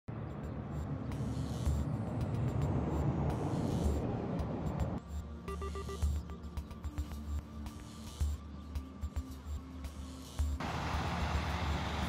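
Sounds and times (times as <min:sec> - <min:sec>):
roadside wind and traffic rumble: 0:00.1 - 0:12.0
music with short repeated tones: 0:05.0 - 0:10.6.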